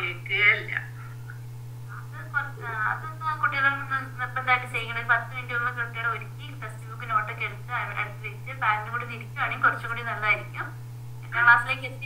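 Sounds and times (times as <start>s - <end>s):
steady low hum: 0.0s - 12.0s
woman speaking over video call: 2.0s - 12.0s.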